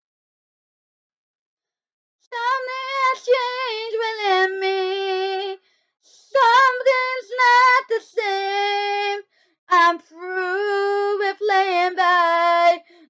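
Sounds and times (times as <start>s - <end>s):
young female voice singing: 2.3s - 5.6s, 6.2s - 13.0s.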